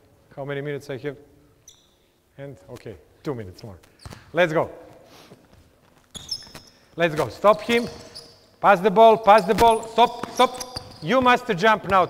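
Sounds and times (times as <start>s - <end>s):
sneakers squeaking on floor: 1.6s - 2.0s, 3.8s - 4.4s, 5.4s - 12.0s
basketball bouncing on court floor: 7.2s - 8.3s, 9.2s - 12.0s.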